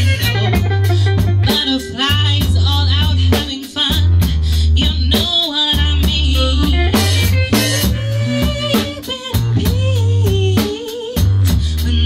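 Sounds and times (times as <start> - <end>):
electric guitar: 0.0 - 2.6, 6.4 - 9.6
drums: 0.0 - 12.0
electric bass: 0.0 - 12.0
woman singing with vibrato: 0.0 - 12.0.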